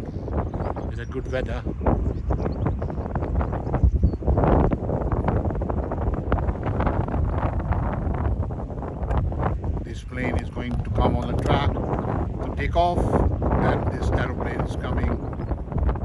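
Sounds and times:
gusty wind buffeting microphone: 0.0s - 16.0s.

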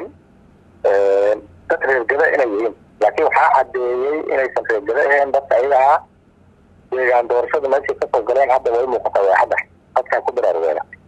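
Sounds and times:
man talking: 0.8s - 6.1s, 6.9s - 11.0s.

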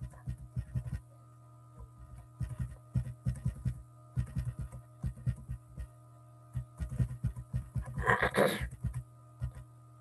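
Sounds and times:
mouse scroll wheel knocks: 6.6s - 8.0s.

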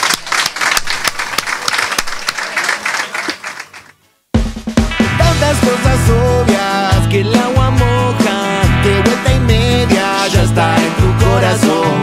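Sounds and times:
audience applauding: 0.0s - 3.9s
sharp individual claps: 0.0s - 4.0s.

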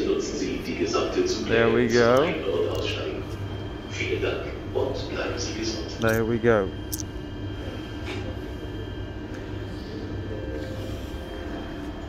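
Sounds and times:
electric train humming: 0.0s - 12.0s.

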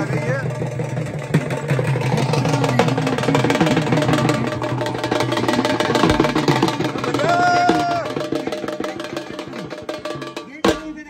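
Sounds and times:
dhol drums beating: 0.0s - 11.0s
voices: 0.0s - 11.0s.

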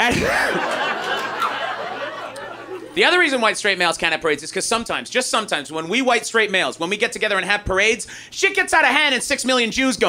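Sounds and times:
audience laughter and chatter: 0.4s - 3.0s.

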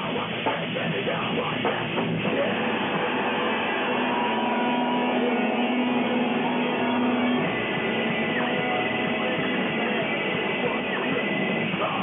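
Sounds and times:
distorted guitars droning chord: 0.0s - 12.0s
heavy metal band playing live: 0.0s - 12.0s.

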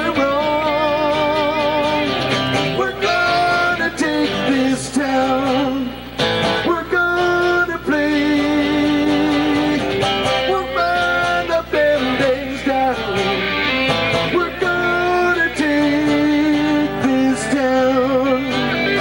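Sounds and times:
acoustic guitars playing: 0.0s - 19.0s
electric guitar playing: 0.0s - 19.0s
person singing: 0.0s - 19.0s.

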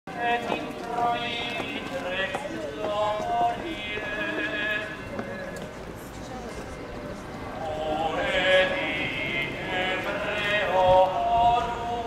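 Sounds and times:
crowd footsteps: 0.1s - 12.0s
voices singing a hymn: 0.2s - 5.6s, 7.4s - 12.0s.

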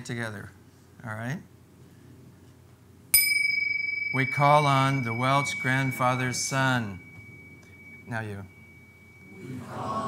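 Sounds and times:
handheld metal bell ringing: 3.2s - 9.5s.

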